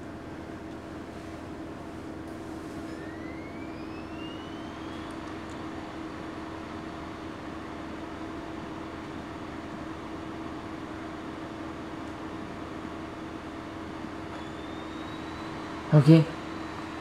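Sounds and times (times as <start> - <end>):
machine hum: 0.0 - 17.0
faint rising whine: 2.3 - 17.0.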